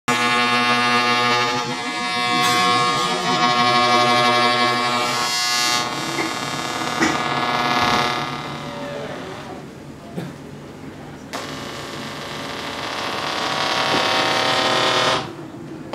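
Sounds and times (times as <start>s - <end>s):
experimental drone of pitched tones: 0.1s - 9.7s, 11.3s - 15.9s.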